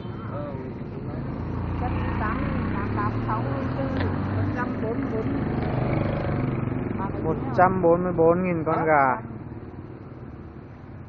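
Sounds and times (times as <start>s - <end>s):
people talking: 0.0s - 5.4s, 6.9s - 9.2s
engine hum: 0.0s - 11.0s.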